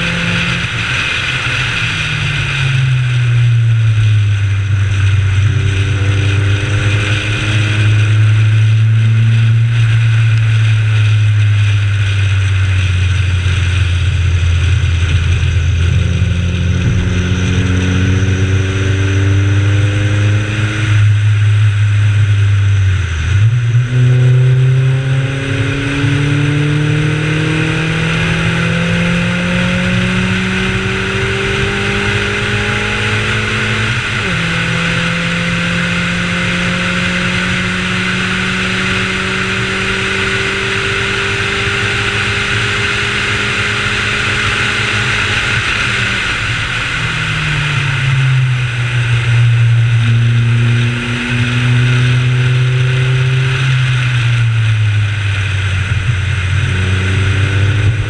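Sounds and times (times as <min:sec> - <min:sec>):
race car engine accelerating: 0:00.0 - 0:58.0
wind and road noise: 0:00.0 - 0:58.0.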